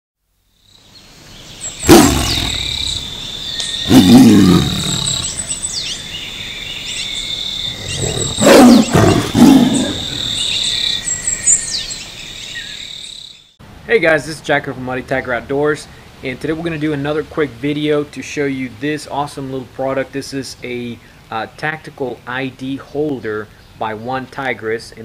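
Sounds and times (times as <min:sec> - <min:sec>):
birdsong: 0:00.6 - 0:13.6
tiger roaring: 0:01.8 - 0:03.1, 0:03.8 - 0:05.6, 0:07.7 - 0:10.5.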